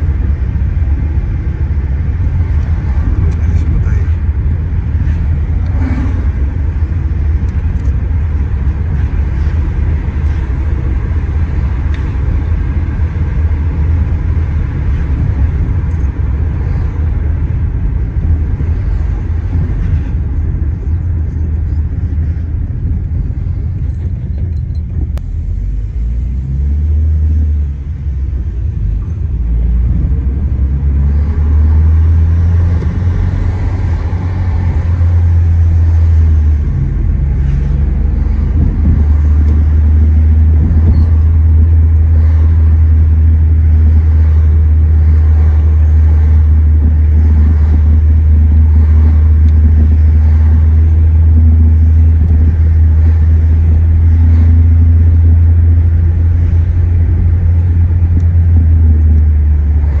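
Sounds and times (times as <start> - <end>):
car engine and tyre rumble: 0.0 - 60.0.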